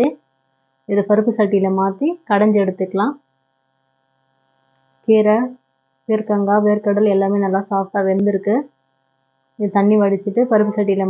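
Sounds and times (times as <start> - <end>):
faint electrical hum: 0.0 - 11.0
woman's voice: 0.9 - 3.2, 5.1 - 5.5, 6.1 - 8.6, 9.6 - 11.0.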